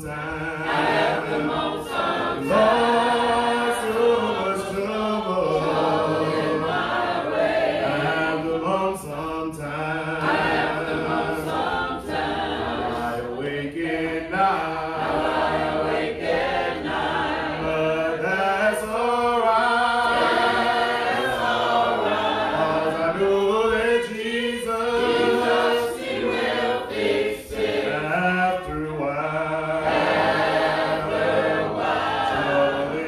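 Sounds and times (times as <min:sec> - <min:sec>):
man singing into a microphone: 0:00.0 - 0:00.7, 0:08.0 - 0:10.2, 0:17.7 - 0:20.0, 0:22.8 - 0:25.3, 0:27.9 - 0:29.8
congregation singing a hymn: 0:00.0 - 0:33.0.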